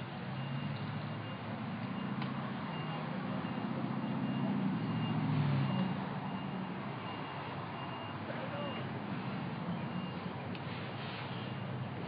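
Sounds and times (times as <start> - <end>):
reversing alarm beeping: 0.3 - 8.9, 9.7 - 10.3.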